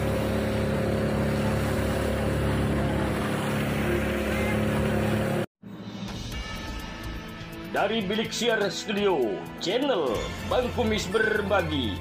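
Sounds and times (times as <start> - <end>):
steady engine drone: 0.0 - 5.5.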